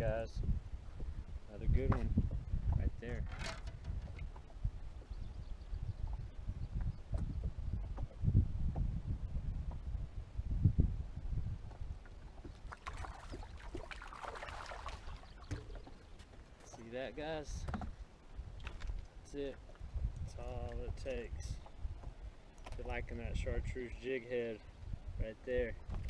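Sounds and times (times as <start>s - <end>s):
wind and water rumble: 0.0s - 26.0s.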